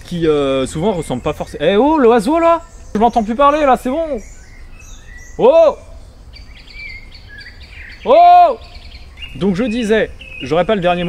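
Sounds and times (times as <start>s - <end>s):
songbird chirping and whistling: 0.0s - 11.0s.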